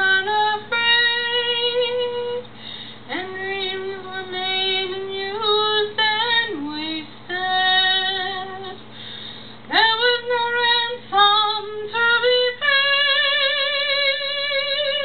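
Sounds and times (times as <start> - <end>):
woman singing slow ballad: 0.0 - 15.0.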